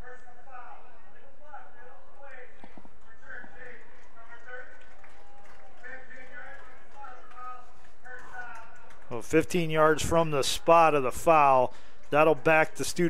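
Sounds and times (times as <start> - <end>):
distant speech over loudspeakers: 0.0 - 13.0
stadium crowd ambience: 0.0 - 13.0.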